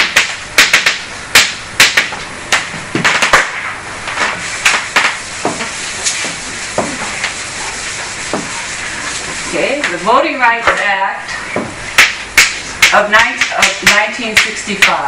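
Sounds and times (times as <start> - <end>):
steady hiss: 0.0 - 15.0
chalk tapping and scraping on board: 4.1 - 10.0, 12.0 - 15.0.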